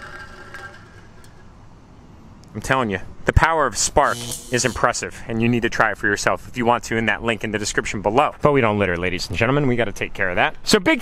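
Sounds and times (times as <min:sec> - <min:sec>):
faint mechanical hum: 0:00.0 - 0:11.0.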